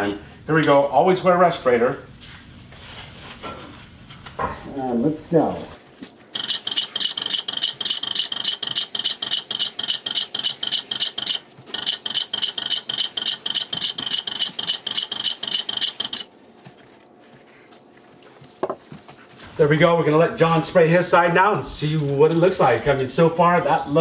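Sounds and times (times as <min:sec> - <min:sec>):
paint spray gun hissing: 0:06.4 - 0:16.3.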